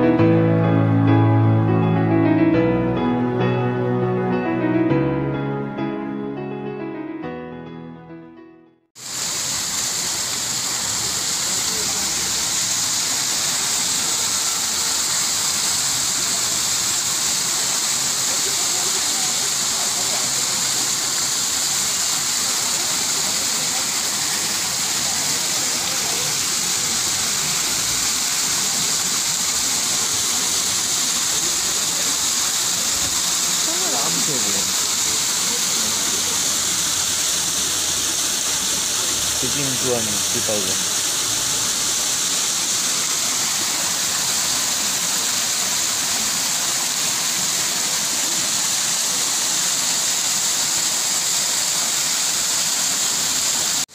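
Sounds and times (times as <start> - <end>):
piano music: 0.0 - 8.9, 32.7 - 37.1, 38.6 - 41.7
waterfall splashing over rocks: 9.0 - 53.9.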